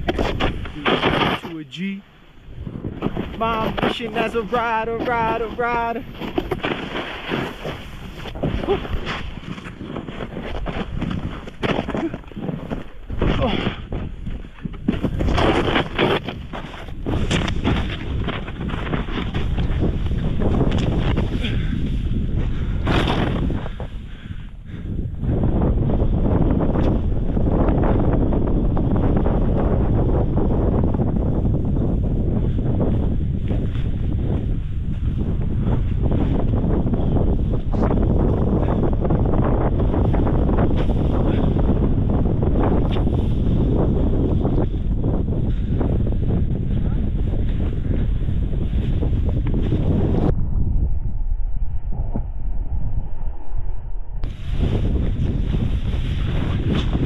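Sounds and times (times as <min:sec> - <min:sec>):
snowboard riding through powder: 0:00.0 - 0:01.8, 0:02.5 - 0:50.3, 0:54.2 - 0:57.0
wind buffeting microphone: 0:00.0 - 0:57.0.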